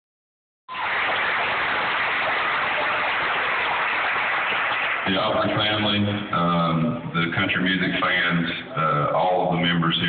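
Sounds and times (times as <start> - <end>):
audience applauding: 0.7 - 5.6.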